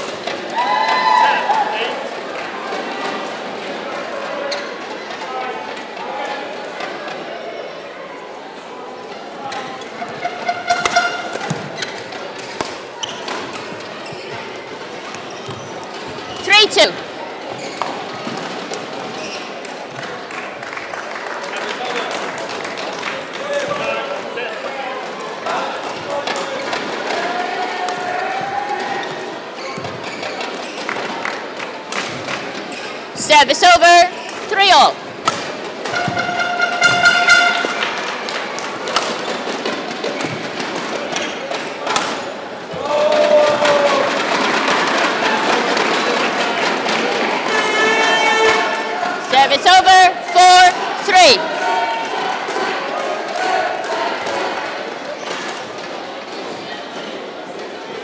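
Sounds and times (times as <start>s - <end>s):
murmur of crowd voices: 0.0s - 58.0s
shoes squeaking on court floor: 4.4s - 4.9s, 9.5s - 19.7s, 29.0s - 31.1s, 32.1s - 33.1s, 34.1s - 42.3s
rackets striking shuttlecock: 10.1s - 11.8s, 35.2s - 40.4s.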